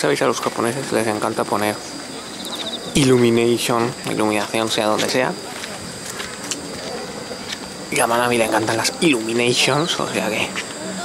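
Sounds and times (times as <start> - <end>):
background hiss: 0.0 - 11.0
high-pitched insect chirring: 0.0 - 11.0.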